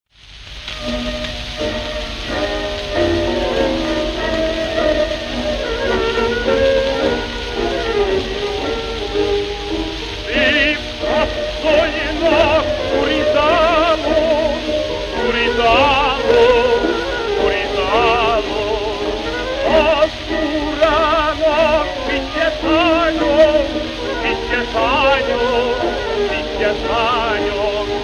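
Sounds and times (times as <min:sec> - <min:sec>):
record surface hiss and crackle: 0:00.1 - 0:28.0
string band playing: 0:00.6 - 0:28.0.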